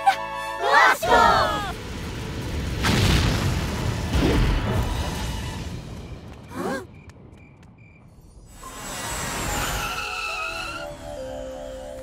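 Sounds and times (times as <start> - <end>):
cartoon rocket whoosh with whistling: 8.6 - 11.0.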